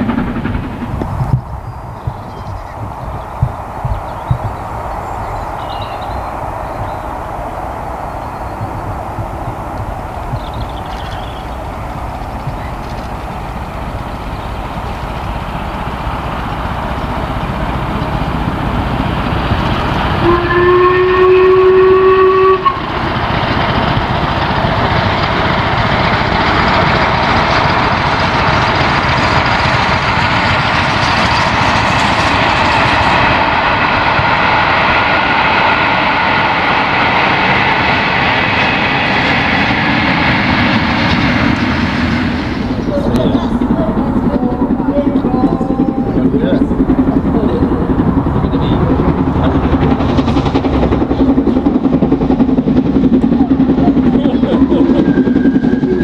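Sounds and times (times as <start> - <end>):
steam train running past: 0.0 - 56.0
steam locomotive whistle: 20.1 - 22.9, 54.6 - 56.0.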